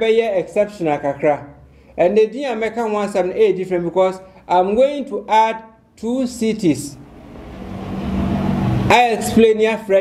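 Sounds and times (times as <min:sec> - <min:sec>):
motor vehicle engine: 0:07.0 - 0:09.3.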